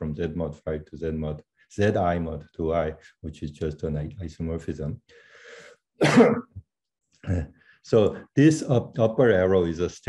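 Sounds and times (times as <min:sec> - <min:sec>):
faint breath: 0:05.1 - 0:05.8
man coughing: 0:06.0 - 0:06.6.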